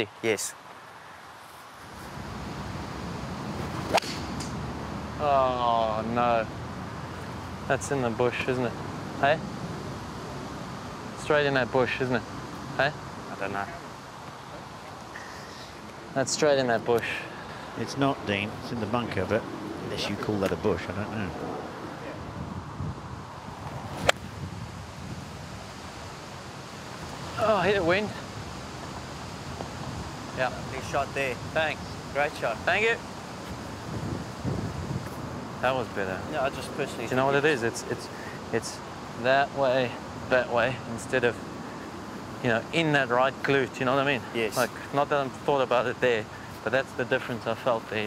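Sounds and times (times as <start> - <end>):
golf swing whoosh: 3.6 - 4.6, 23.8 - 24.3
golf club striking ball: 3.8 - 4.6, 24.0 - 24.2
wind noise on microphone: 21.2 - 32.8, 33.4 - 35.8.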